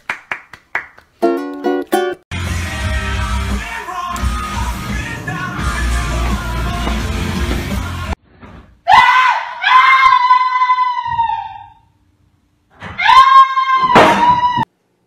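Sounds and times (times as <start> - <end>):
loud rock music: 2.3 - 8.2
person screaming high-pitched: 8.9 - 11.8, 13.0 - 14.6.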